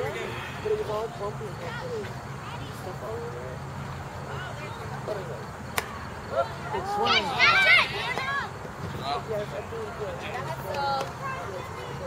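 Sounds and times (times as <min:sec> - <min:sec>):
faint voices: 0:00.0 - 0:12.0
bat hitting softball: 0:05.7 - 0:06.0.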